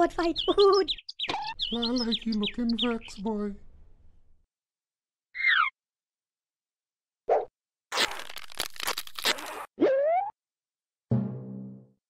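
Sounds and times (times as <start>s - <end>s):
crunchy scuffling noise: 7.9s - 9.6s
cartoon falling whistle slide: 9.8s - 10.3s.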